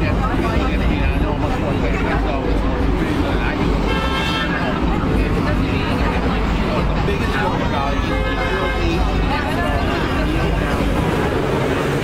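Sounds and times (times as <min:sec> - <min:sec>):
people talking: 0:00.0 - 0:12.0
traffic rumble: 0:00.0 - 0:12.0.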